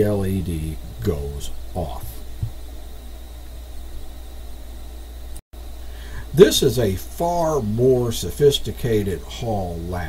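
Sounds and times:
low electrical hum: 0.0 - 10.0
faint hiss: 5.6 - 10.0.

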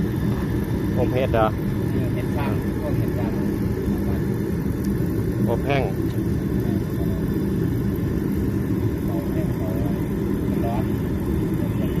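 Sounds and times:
heater fan and burner rushing: 0.0 - 12.0.

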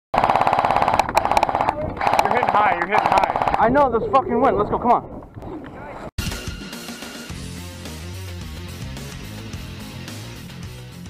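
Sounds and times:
airsoft gun firing: 0.2 - 3.6
gearbox whine: 0.2 - 4.0.

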